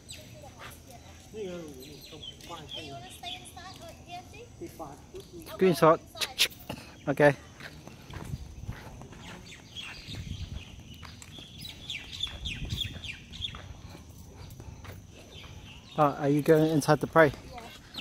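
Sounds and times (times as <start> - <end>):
birds chirping: 0.0 - 18.0.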